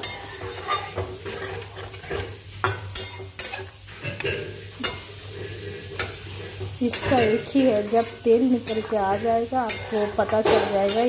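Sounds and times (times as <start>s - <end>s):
paste sizzling in oil: 0.0s - 11.0s
spatula scraping a pan: 0.0s - 11.0s.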